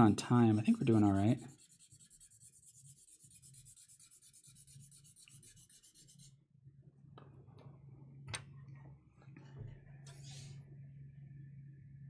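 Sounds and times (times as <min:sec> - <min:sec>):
pencil scratching on paper: 0:00.6 - 0:06.3
low hum: 0:06.6 - 0:12.0.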